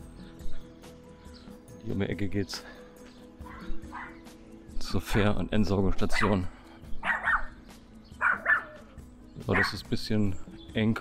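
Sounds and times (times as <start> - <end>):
dog barking: 3.4 - 4.2, 6.1 - 6.4, 7.0 - 7.6, 8.2 - 8.9, 9.5 - 9.8.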